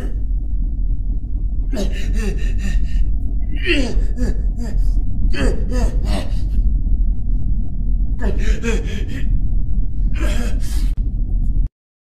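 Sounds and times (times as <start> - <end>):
steady low rumble: 0.0 - 11.7
person gasping: 1.7 - 6.6, 8.2 - 9.4, 10.1 - 11.0.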